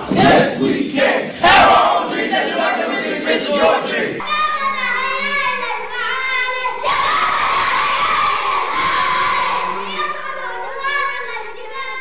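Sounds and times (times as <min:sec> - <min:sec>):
boys chanting and shouting: 0:00.0 - 0:12.0.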